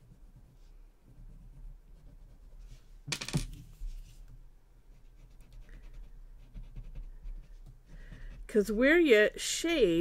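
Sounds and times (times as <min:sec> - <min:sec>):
scratchy rubbing on paper: 0:00.0 - 0:02.9, 0:04.9 - 0:08.9
drawing tool clattering on table: 0:03.1 - 0:03.7.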